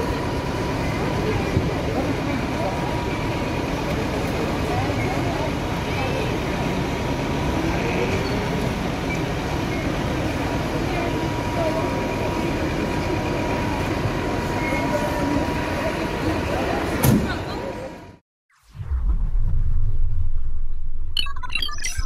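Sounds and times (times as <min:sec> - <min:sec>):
high pump whine: 0:00.0 - 0:17.0
diesel engine rumbling: 0:00.0 - 0:18.2.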